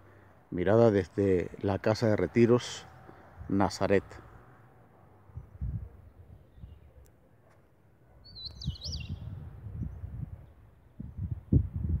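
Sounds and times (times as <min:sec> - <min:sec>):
bird warbling chirp: 0:08.2 - 0:09.4.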